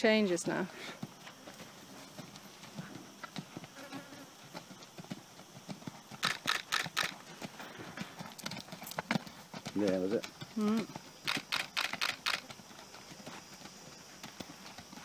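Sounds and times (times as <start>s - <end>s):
hoofbeats on sand: 0.0s - 15.0s.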